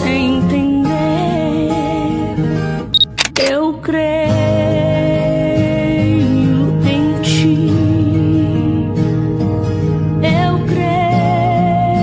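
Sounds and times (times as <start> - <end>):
short high beep: 3.0 - 3.3
camera shutter clicks: 3.0 - 3.5
gospel singing with guitar: 3.4 - 9.2, 10.2 - 12.0.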